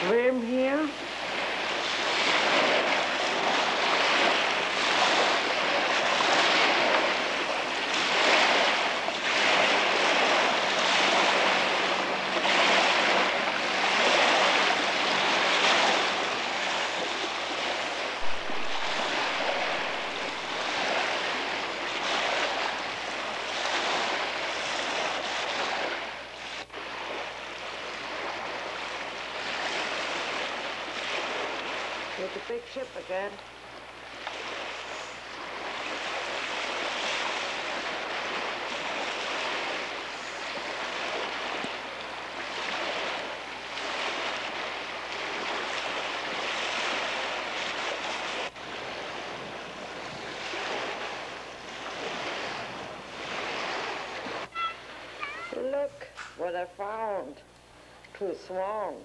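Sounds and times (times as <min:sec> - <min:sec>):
wind buffeting microphone: 0:00.0 - 0:27.2
lake water splashing: 0:00.0 - 0:59.0.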